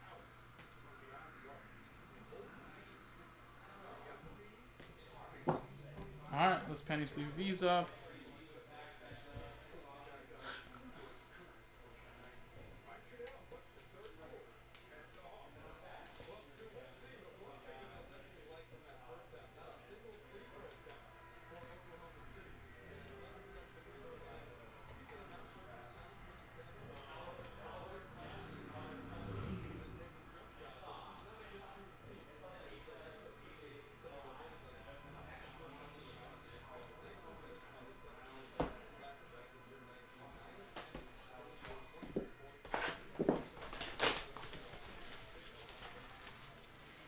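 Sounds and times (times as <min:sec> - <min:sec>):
faint low voice: 0:08.1 - 0:42.6.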